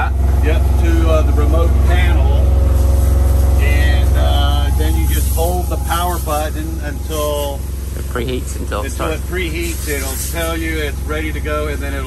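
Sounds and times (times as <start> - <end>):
men talking: 0.0 - 2.6, 3.6 - 12.0
low engine hum: 0.0 - 12.0.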